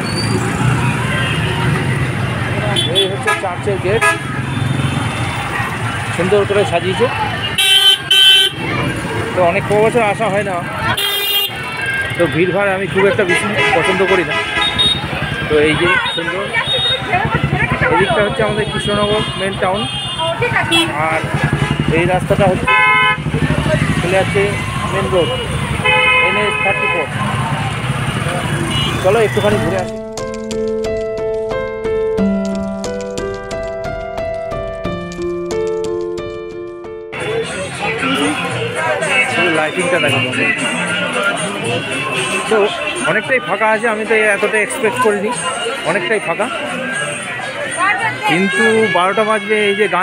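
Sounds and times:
car and motorbike engines: 0.0 - 35.0, 37.1 - 49.9
street traffic: 0.0 - 50.0
voices: 0.6 - 30.0, 37.2 - 50.0
vehicle horn toot: 2.7 - 4.3, 7.5 - 8.7, 10.9 - 12.4, 13.2 - 23.4, 25.1 - 27.1, 28.4 - 29.7.

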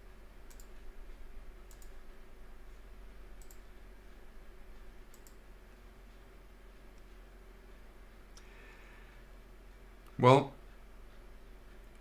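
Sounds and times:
faint low hum: 0.0 - 12.0
computer mouse clicks: 0.4 - 0.8, 1.6 - 2.0, 3.4 - 3.7, 5.1 - 5.4.

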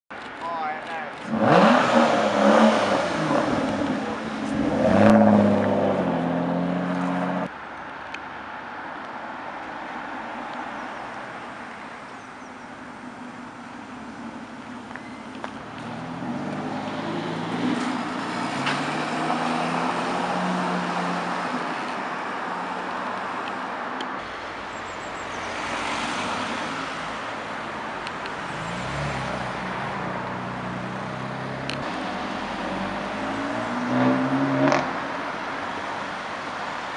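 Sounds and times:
road noise of car driving by: 0.1 - 36.9
traffic rush: 0.1 - 36.9
car engine low note: 1.2 - 7.5
car engine revving hard: 1.2 - 7.5, 28.4 - 35.1.

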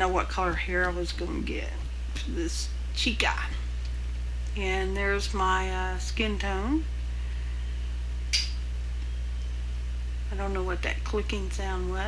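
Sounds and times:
steady low hum: 0.0 - 12.0
sharp click: 8.3 - 8.6.

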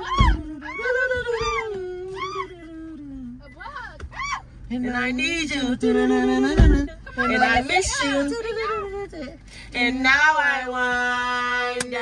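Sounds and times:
wordless falsetto singing: 0.0 - 3.3.

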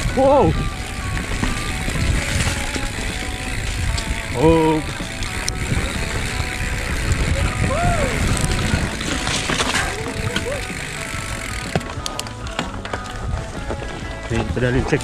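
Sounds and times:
background music: 0.0 - 15.0
bike rattling over bumps: 0.0 - 15.0
wind buffeting microphone: 0.0 - 15.0
person shouting: 7.4 - 8.3, 10.3 - 10.7.

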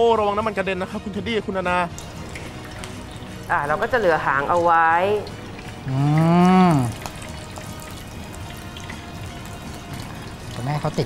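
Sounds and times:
faint background music: 0.0 - 11.0
shrimp deep-frying in oil: 0.0 - 11.0.

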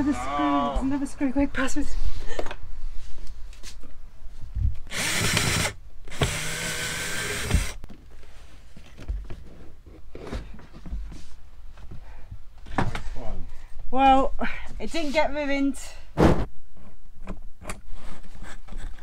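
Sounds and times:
cordless drill running: 4.9 - 7.8.

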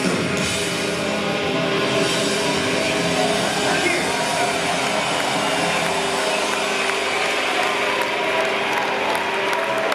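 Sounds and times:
distorted electric guitar: 0.0 - 8.8
rock band holding chord: 0.0 - 9.9
crowd clapping: 2.7 - 9.9.

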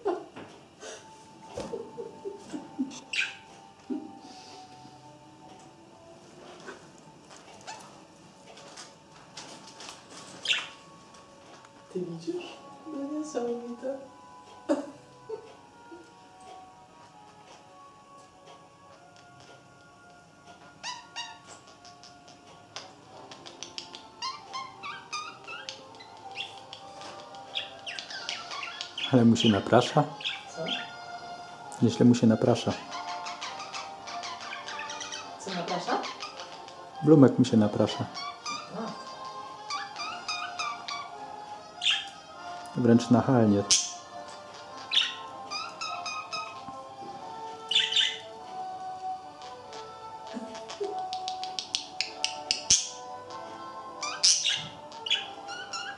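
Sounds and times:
faint background music: 0.0 - 55.9
budgerigar chirping and warbling: 2.9 - 3.5, 10.4 - 10.8, 20.8 - 22.4, 23.3 - 31.1, 32.7 - 37.0, 37.9 - 42.3, 43.6 - 46.7, 47.6 - 48.4, 49.3 - 55.9.

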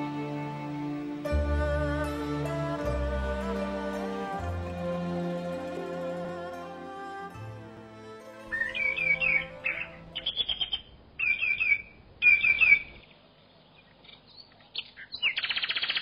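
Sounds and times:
music: 0.0 - 10.3
bird trill: 8.5 - 13.1, 13.8 - 16.0
small birds chirping: 8.5 - 16.0.

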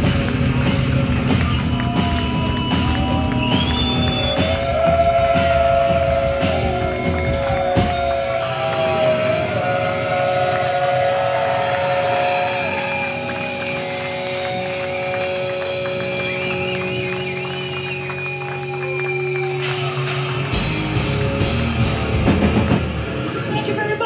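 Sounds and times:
drum and cymbal hits: 0.0 - 17.0, 19.6 - 23.3
ringing electric guitars and bass: 0.0 - 24.0
guitar feedback: 3.3 - 23.5.

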